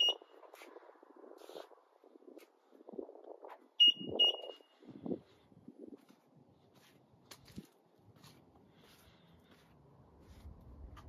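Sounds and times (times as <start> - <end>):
high-pitched electronic beeps: 0.0 - 0.3, 3.8 - 4.7.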